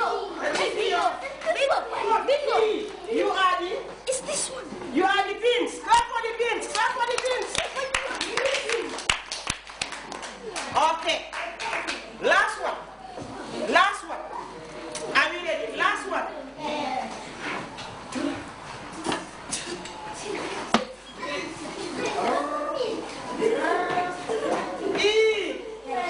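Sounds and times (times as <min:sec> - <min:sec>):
children's high-pitched voices: 0:00.0 - 0:02.9, 0:04.0 - 0:04.8, 0:21.2 - 0:24.8
classroom background noise: 0:00.0 - 0:26.0
sharp hand claps: 0:06.7 - 0:12.1.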